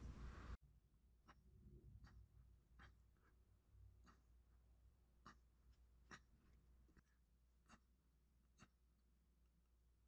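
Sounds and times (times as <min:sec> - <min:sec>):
fingers scratching modelling clay: 0:01.1 - 0:10.0.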